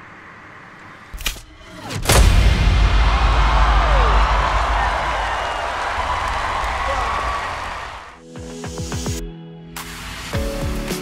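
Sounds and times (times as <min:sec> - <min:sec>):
audience applauding and cheering: 0:02.8 - 0:08.2.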